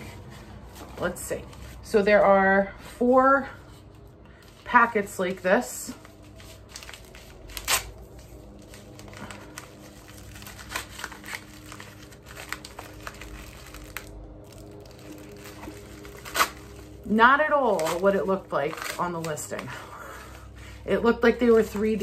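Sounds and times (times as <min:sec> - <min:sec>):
plastic packaging crinkling and tearing: 0:03.9 - 0:20.7.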